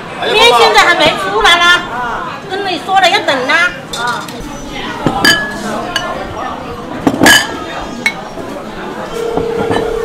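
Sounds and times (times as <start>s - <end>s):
ceramic bowls clinking: 5.0s - 6.2s, 7.1s - 8.3s.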